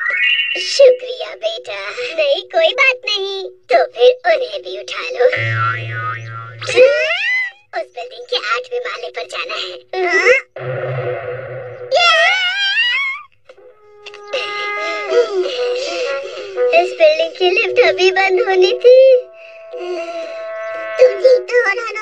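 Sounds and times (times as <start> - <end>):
background music: 14.0 - 22.0.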